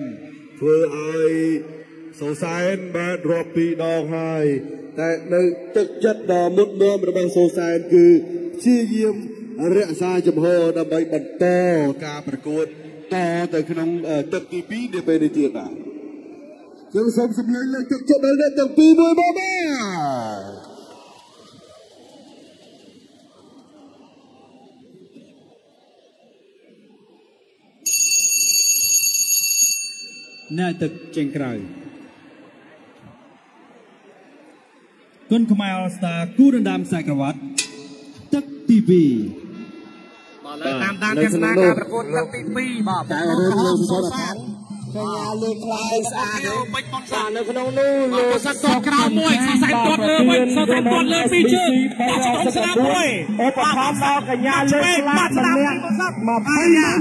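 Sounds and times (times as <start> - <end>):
man's voice: 0.0 - 16.0, 40.5 - 57.0
boxing bell ringing: 27.9 - 31.4.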